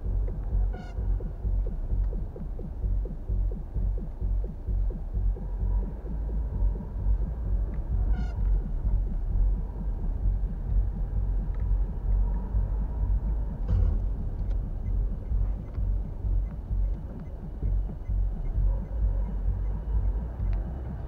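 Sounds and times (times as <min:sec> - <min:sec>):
car engine rumble: 0:00.0 - 0:21.0
road noise inside car: 0:00.0 - 0:21.0.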